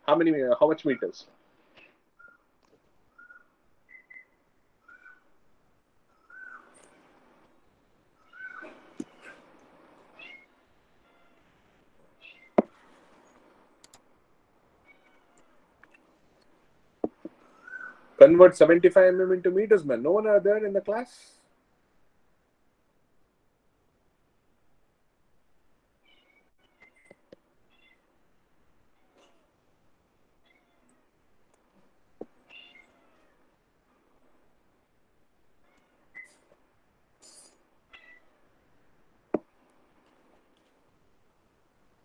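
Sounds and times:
high-pitched chirping calls: 3.1s - 5.4s, 6.1s - 7.1s, 8.2s - 9.4s, 17.4s - 18.2s
high-pitched animal calls: 6.1s - 7.2s, 8.2s - 9.5s
click: 13.8s - 14.0s.

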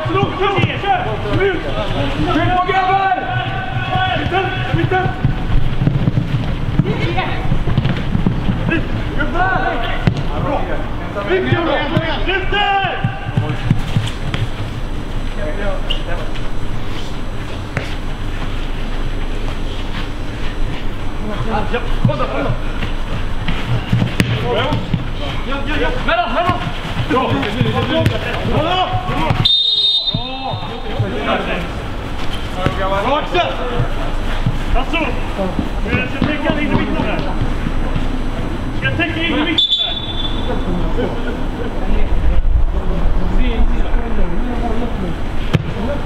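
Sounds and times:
distant players shouting: 0.0s - 5.5s, 8.6s - 13.8s, 23.5s - 31.8s, 32.6s - 40.9s
ball being kicked: 10.0s - 10.4s, 23.5s - 25.0s, 45.5s - 45.8s.

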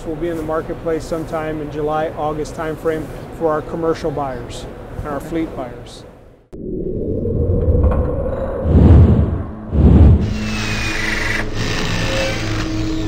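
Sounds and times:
steady low tone: 6.5s - 11.8s
low rumble: 6.5s - 11.9s
heavy deep hits: 7.4s - 10.7s.

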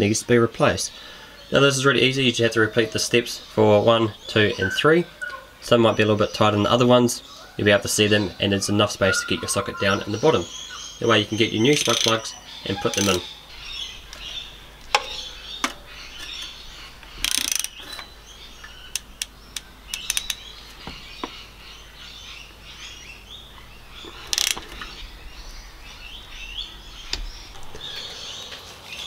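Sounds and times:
socket ratchet clicking: 11.7s - 12.2s, 12.9s - 13.2s, 17.2s - 18.0s, 18.9s - 20.4s, 24.3s - 24.6s.

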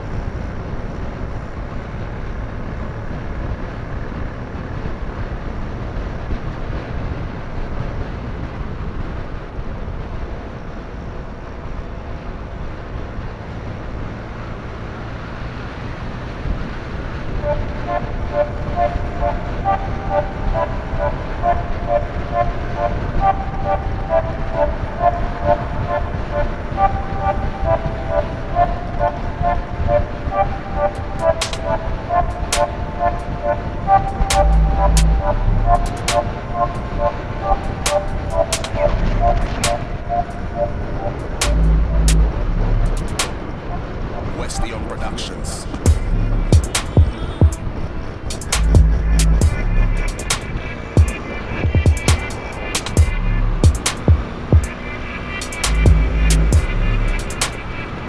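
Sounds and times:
moped engine and wind rush: 0.0s - 58.0s
low bumps: 15.5s - 58.0s
short beeping notes: 17.3s - 57.6s
sharp clicks: 30.9s - 31.7s, 37.8s - 39.9s, 42.9s - 43.4s, 46.6s - 47.6s, 48.3s - 50.5s, 51.8s - 54.7s, 55.4s - 57.6s.

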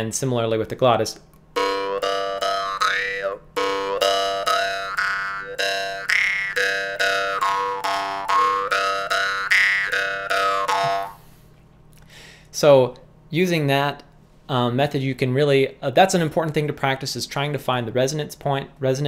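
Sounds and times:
jaw harp drone plucked: 1.5s - 11.4s.

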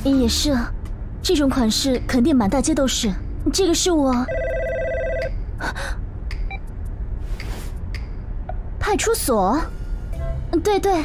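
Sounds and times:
warbling phone ring: 4.3s - 5.3s.

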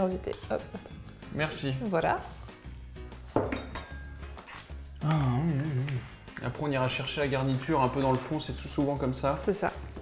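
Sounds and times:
quiet background music: 0.0s - 10.0s
ceramic bowls and utensils clattering: 3.3s - 4.2s.

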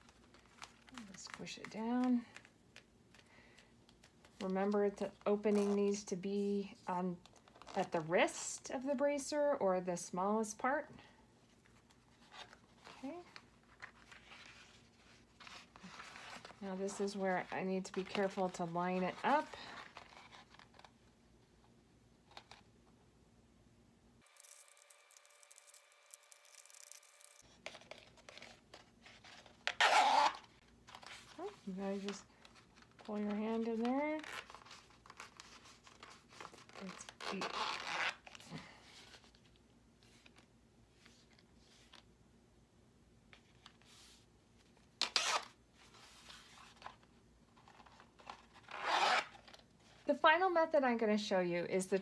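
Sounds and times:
zipper rasp: 29.7s - 30.5s, 36.7s - 38.6s, 45.0s - 45.5s, 48.6s - 49.4s.

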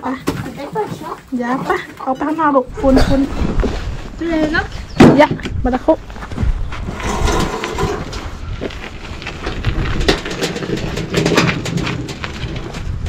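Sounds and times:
wheelbarrow rolling over gravel: 2.6s - 13.0s
logs knocking in metal wheelbarrow: 9.4s - 13.0s.

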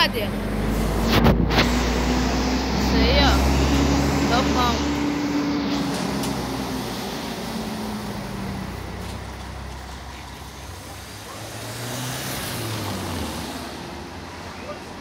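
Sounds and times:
diesel coach engine pulling away: 0.0s - 15.0s
street traffic noise: 0.0s - 15.0s.

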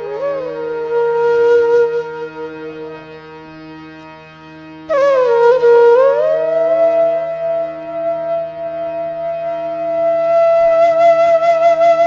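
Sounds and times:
flute-like wind instrument: 0.0s - 3.2s, 4.8s - 12.0s.

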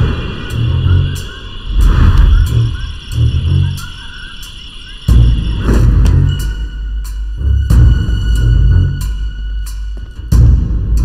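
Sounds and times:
deep rumbling film score: 0.0s - 11.0s.

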